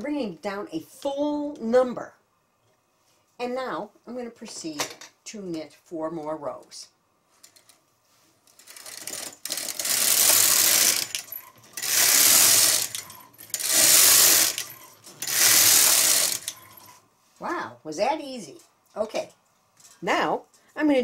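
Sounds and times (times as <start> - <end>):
knitting machine carriage sliding: 8.5 - 17.0.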